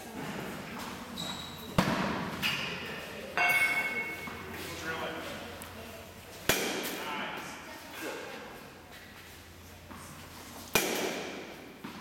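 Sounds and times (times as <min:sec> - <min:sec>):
bat hitting a ball: 0:10.7 - 0:11.5.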